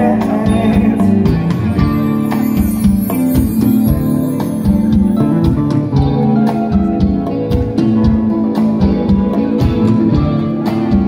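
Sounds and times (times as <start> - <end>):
bass guitar: 0.0 - 11.0
guitar: 0.0 - 11.0.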